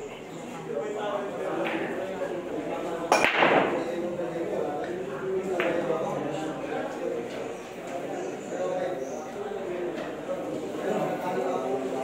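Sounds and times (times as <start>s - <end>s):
cue ball cracking into rack: 3.1s - 3.8s.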